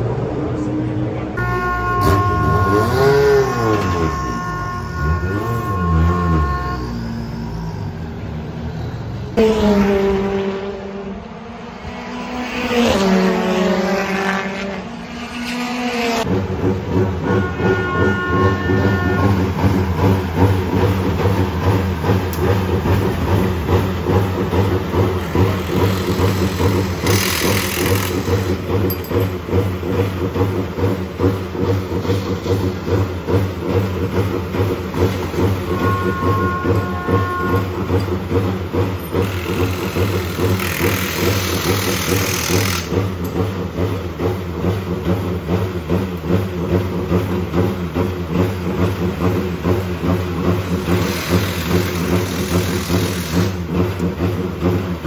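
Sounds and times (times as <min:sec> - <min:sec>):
racing car passing at speed: 0:07.0 - 0:17.4
engine idling: 0:16.3 - 0:55.0.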